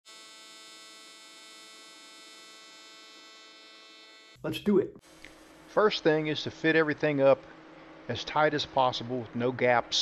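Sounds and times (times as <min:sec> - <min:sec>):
welding arc buzzing: 0:00.1 - 0:05.8.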